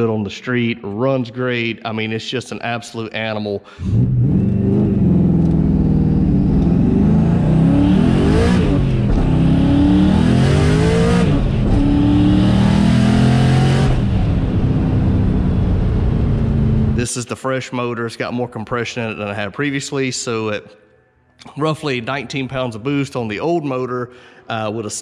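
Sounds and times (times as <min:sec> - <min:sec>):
car engine accelerating hard: 0:03.8 - 0:17.1.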